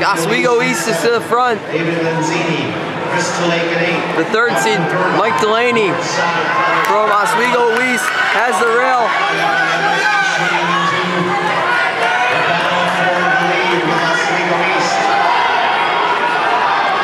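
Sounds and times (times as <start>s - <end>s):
crowd cheering and shouting: 0.0s - 17.0s.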